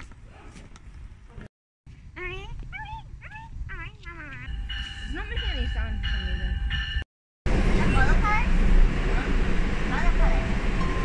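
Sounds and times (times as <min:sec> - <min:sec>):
train rumble: 0:03.8 - 0:11.0.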